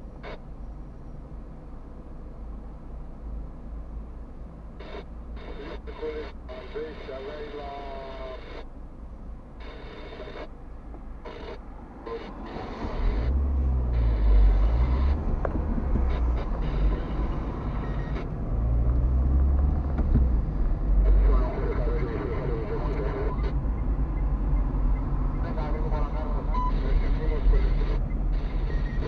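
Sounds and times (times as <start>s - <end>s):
car engine accelerating: 12.3s - 29.0s.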